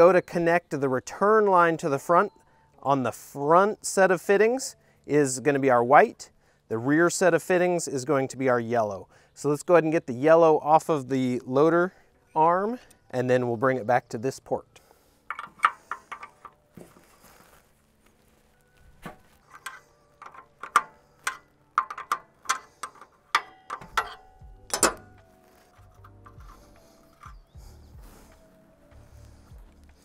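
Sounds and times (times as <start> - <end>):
wrench clinking on metal fittings: 15.3 - 16.5, 19.4 - 27.4.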